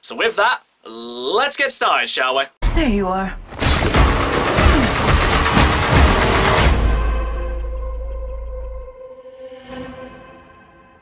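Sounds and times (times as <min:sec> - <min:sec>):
dramatic trailer music: 0:02.6 - 0:11.0
rapid percussive hits: 0:03.6 - 0:07.2.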